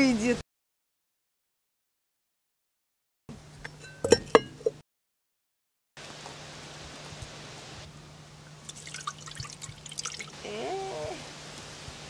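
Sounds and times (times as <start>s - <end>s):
faint hiss: 6.0s - 12.0s
water splashing into a pot: 8.6s - 10.4s.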